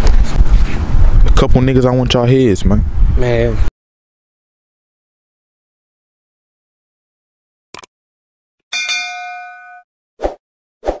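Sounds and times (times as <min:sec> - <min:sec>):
metallic bell-like clang: 0:08.7 - 0:09.9.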